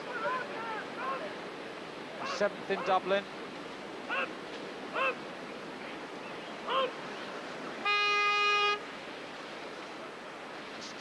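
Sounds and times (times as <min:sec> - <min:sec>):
spectators shouting: 0:00.0 - 0:01.4
whitewater rushing: 0:00.0 - 0:11.0.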